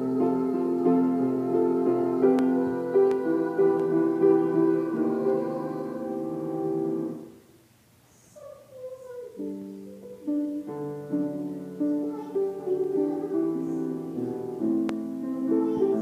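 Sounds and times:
piano chords: 0:00.0 - 0:07.4, 0:09.4 - 0:16.0.

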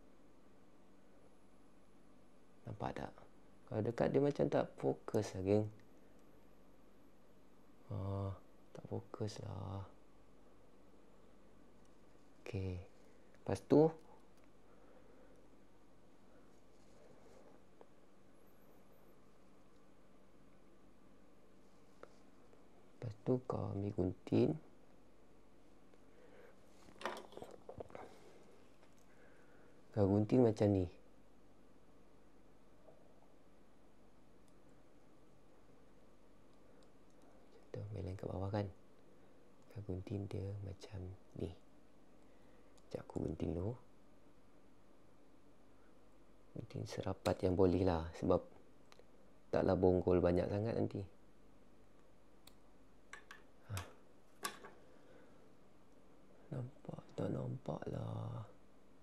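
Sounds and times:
soft clicks and rustles of hands: 0:14.0 - 0:14.6, 0:26.7 - 0:29.2.

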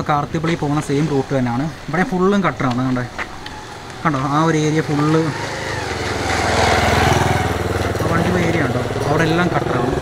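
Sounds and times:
motorcycle engine approaching: 0:02.2 - 0:10.0.

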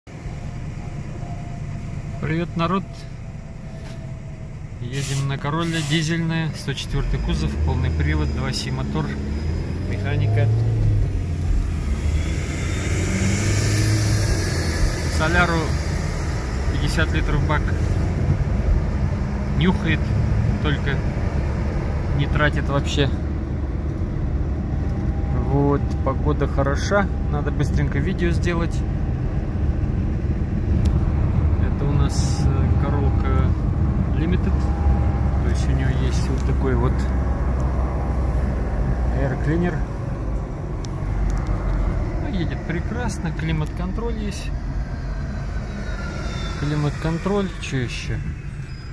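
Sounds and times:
road noise: 0:00.0 - 0:48.9
diesel engine droning: 0:00.1 - 0:48.9
short hiss: 0:05.0 - 0:06.1.

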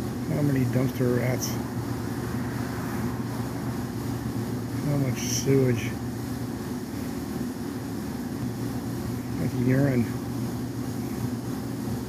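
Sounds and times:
machine motor humming: 0:00.0 - 0:12.0.

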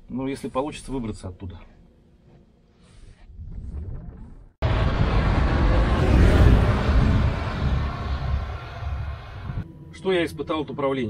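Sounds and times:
vehicle rushing through snow: 0:04.6 - 0:09.6.

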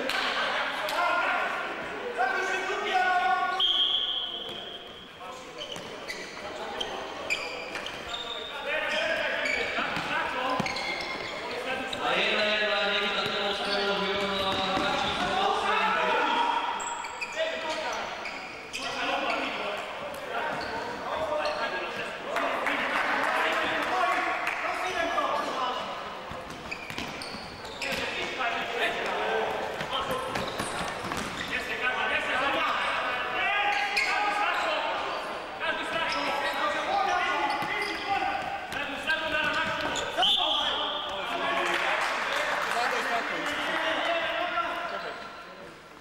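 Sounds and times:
people talking: 0:00.0 - 0:16.6, 0:27.7 - 0:45.3
ball kicked and bouncing on court: 0:09.9 - 0:11.3, 0:26.3 - 0:28.4, 0:29.7 - 0:31.5.

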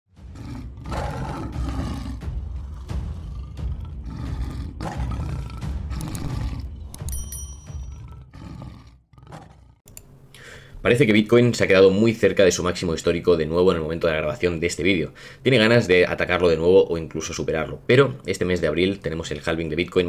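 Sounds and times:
dramatic music: 0:00.1 - 0:09.4
big cat roaring: 0:00.2 - 0:07.1, 0:07.8 - 0:09.9
high-pitched click and chime: 0:07.0 - 0:07.9.

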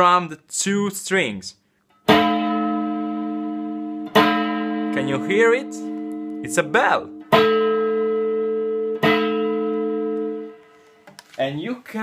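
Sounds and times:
electric guitar strums: 0:02.0 - 0:10.8.

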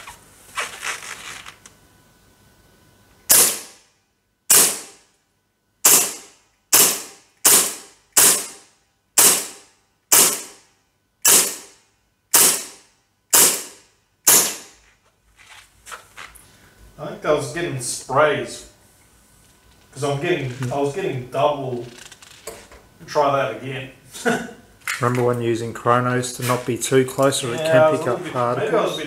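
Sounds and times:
gel blaster shots: 0:09.2 - 0:10.5, 0:11.2 - 0:11.7, 0:12.4 - 0:12.7.

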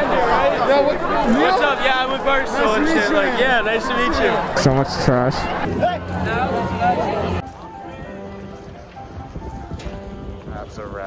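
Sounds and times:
soft background music: 0:05.9 - 0:11.0.

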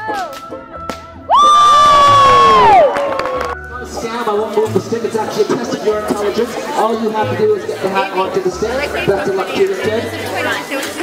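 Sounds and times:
crowd cheering: 0:01.3 - 0:03.6.

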